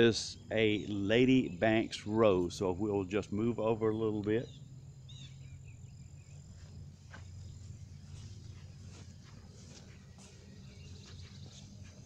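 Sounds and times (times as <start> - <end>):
high insect trill: 0.0 - 12.0
low steady rumble: 0.0 - 12.0
footsteps on grass: 6.2 - 12.0.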